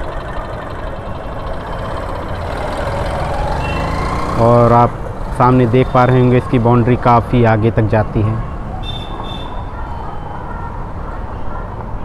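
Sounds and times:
motorcycle engine approaching: 0:00.0 - 0:07.1
road traffic noise: 0:00.0 - 0:12.0.

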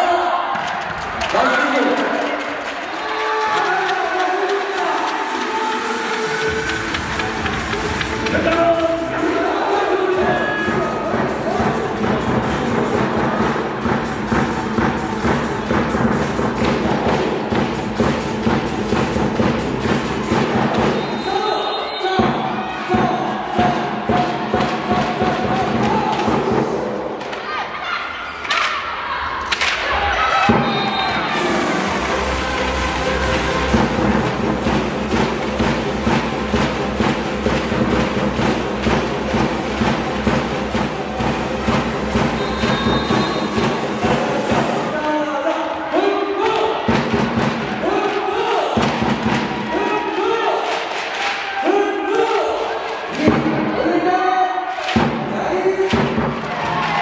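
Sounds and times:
crowd noise: 0:00.0 - 0:57.0
loud music with heavy beat: 0:04.9 - 0:21.2, 0:22.2 - 0:26.9, 0:30.5 - 0:45.0, 0:46.8 - 0:50.4.

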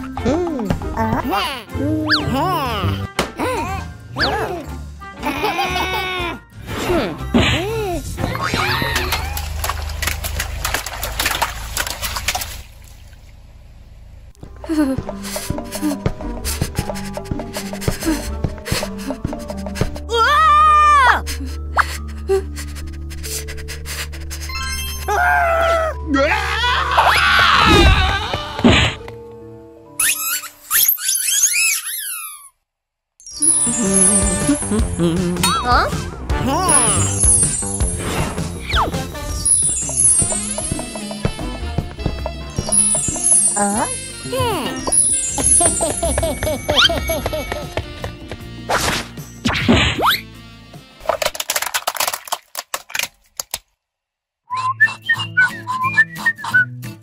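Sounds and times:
high whistling squeaks: 0:30.0 - 0:32.5, 0:33.2 - 0:34.7, 0:38.6 - 0:41.2, 0:42.6 - 0:44.2, 0:54.5 - 0:56.7
bass line: 0:33.6 - 0:46.5
plastic toy crushed under tyre: 0:51.1 - 0:53.6.

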